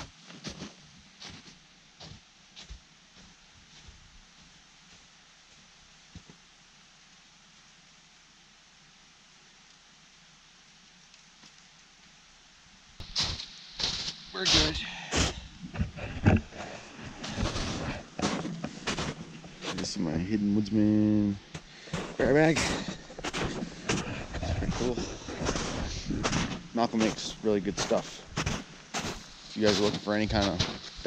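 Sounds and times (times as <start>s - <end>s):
booted footsteps in snow: 0.0s - 6.4s, 13.0s - 31.0s
faint hiss: 0.0s - 31.0s.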